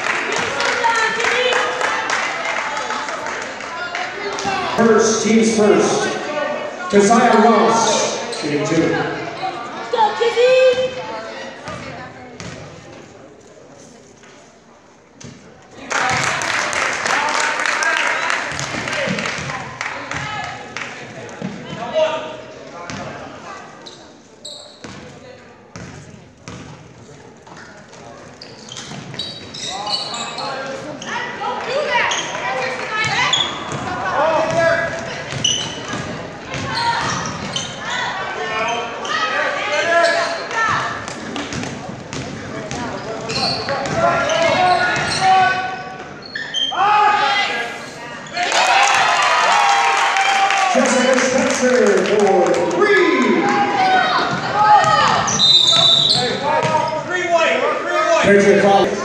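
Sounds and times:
people shouting and calling out: 46.5 - 51.8, 52.4 - 59.0.

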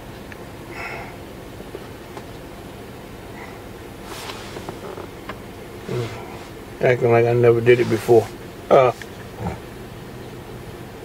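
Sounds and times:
low hum inside vehicle cabin: 0.0 - 11.0
rustle: 3.3 - 6.8, 7.4 - 9.9.

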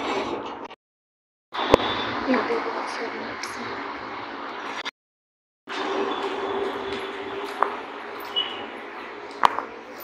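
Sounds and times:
room noise: 5.7 - 10.0.

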